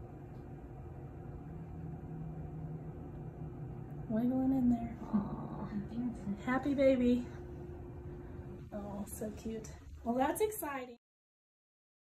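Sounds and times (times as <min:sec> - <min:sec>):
steady low tones: 0:00.0 - 0:10.8
low machine hum: 0:00.0 - 0:11.0.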